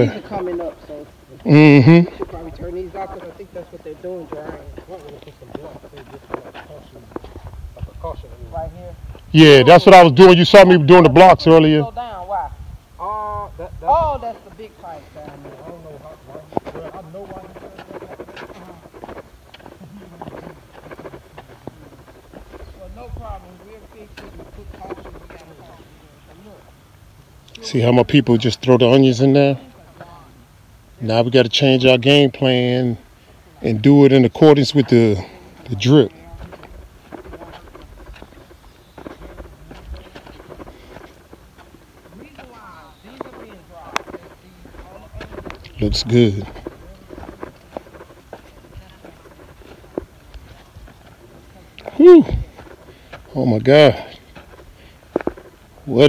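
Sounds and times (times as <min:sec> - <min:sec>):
footsteps on dry soil and grass: 0:00.0 - 0:11.6, 0:13.8 - 0:26.9, 0:33.0 - 0:56.0
faint voices talking: 0:00.0 - 0:56.0.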